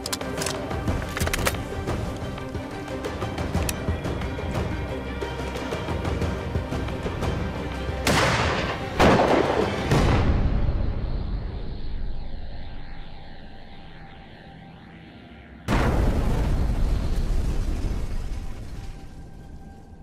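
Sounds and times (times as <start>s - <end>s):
low rumble: 9.8s - 20.0s.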